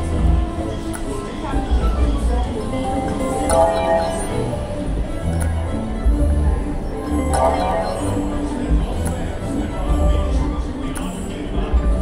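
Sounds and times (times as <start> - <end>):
jingly slot machine music: 2.6 - 9.2
clinking chimes: 2.9 - 4.8, 7.2 - 8.4.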